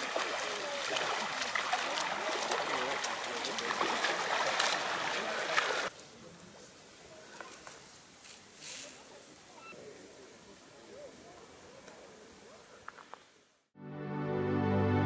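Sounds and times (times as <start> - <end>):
feet splashing in shallow water: 0.0 - 5.9
voices chattering: 0.0 - 13.1.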